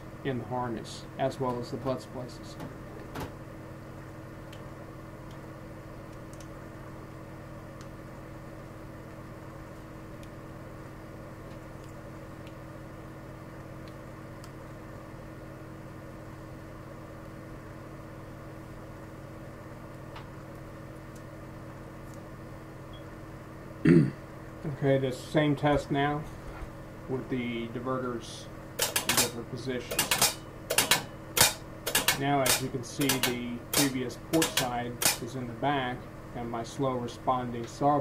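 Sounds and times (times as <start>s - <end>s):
low electrical hum: 0.0s - 38.0s.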